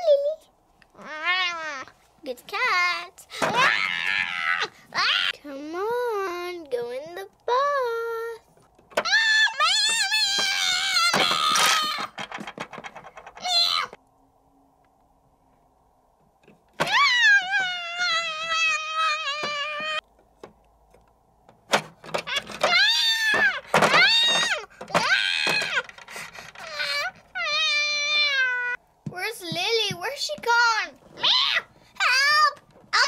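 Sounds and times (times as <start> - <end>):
cat meowing and yowling: 26.6 - 28.8.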